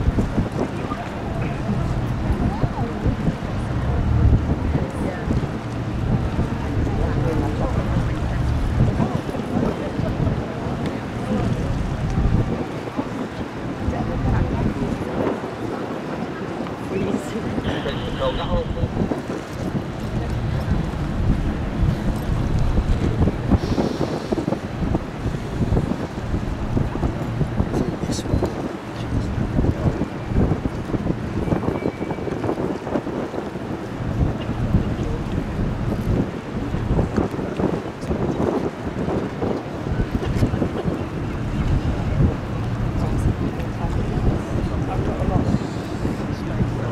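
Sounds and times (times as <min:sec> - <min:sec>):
river water: 0:00.0 - 0:46.9
tugboat engines: 0:00.0 - 0:46.9
wind buffeting microphone: 0:00.0 - 0:46.9.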